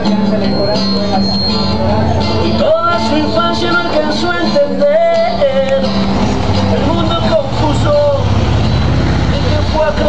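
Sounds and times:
acoustic guitar playing: 0:00.0 - 0:10.0
heavy vehicle engine rumble: 0:00.0 - 0:10.0.

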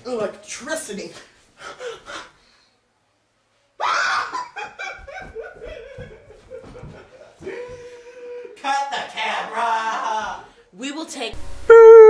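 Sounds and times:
girl shrieking: 0:03.8 - 0:04.4.

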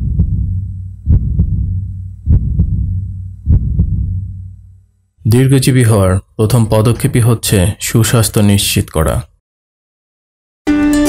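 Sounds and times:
heartbeat: 0:00.0 - 0:04.7
steady low hum: 0:00.0 - 0:08.0.

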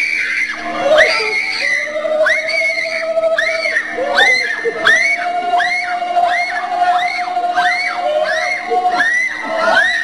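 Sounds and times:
people wailing cries: 0:00.0 - 0:10.0.

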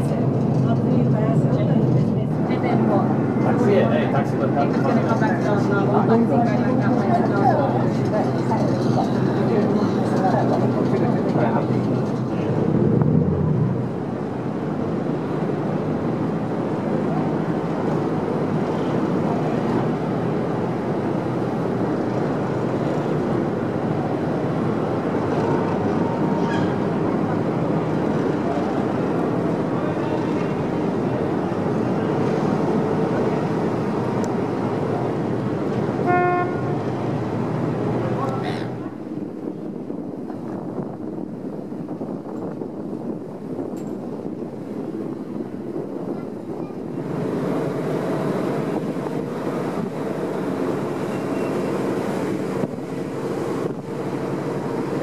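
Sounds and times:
ferry engine humming: 0:00.0 - 0:55.0
horn toot: 0:36.0 - 0:36.8.

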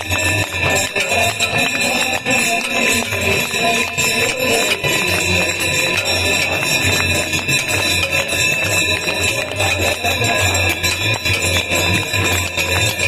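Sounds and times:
hand bells ringing rapidly: 0:00.0 - 0:13.0.

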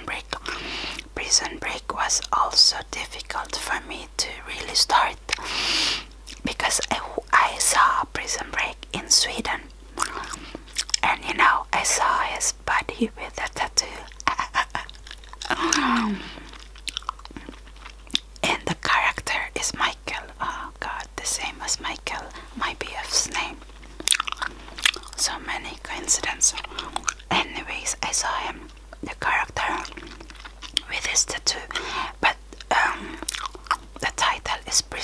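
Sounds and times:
soft whispering: 0:00.0 - 0:05.4, 0:06.4 - 0:16.6, 0:18.4 - 0:23.7, 0:25.1 - 0:30.2, 0:30.8 - 0:33.3, 0:34.0 - 0:35.0
gum chewing mouth clicks: 0:06.2 - 0:07.0, 0:10.0 - 0:11.1, 0:13.4 - 0:19.4, 0:23.3 - 0:25.3, 0:26.1 - 0:27.3, 0:28.6 - 0:31.9, 0:32.5 - 0:34.2.

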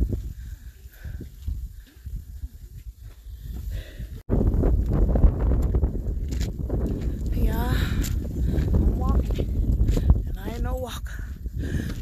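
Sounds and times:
footsteps on a trail: 0:00.0 - 0:12.0
wind rumbling on microphone: 0:00.0 - 0:12.0.

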